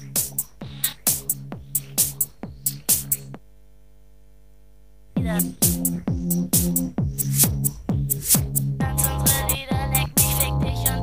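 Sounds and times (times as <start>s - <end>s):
electronic dance beat: 0.0s - 3.4s, 5.2s - 11.0s
steady electronic hum: 0.0s - 11.0s.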